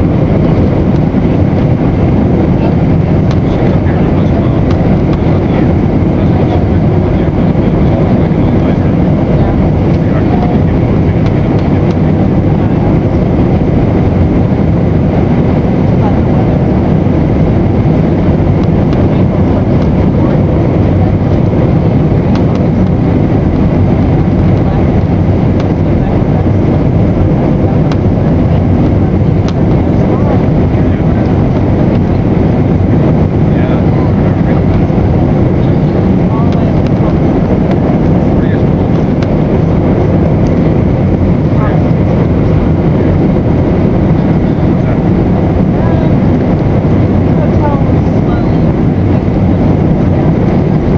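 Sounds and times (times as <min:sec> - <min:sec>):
jet engine and airflow rushing: 0:00.0 - 0:50.9.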